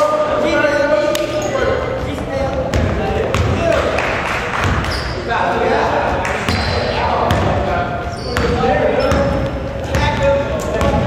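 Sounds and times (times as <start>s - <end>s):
basketball bouncing on wooden floor: 2.0s - 3.6s, 6.5s - 11.0s.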